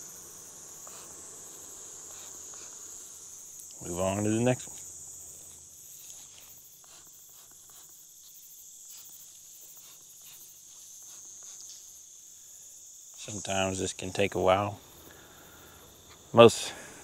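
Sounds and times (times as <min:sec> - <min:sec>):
crickets chirping: 0:00.0 - 0:17.0.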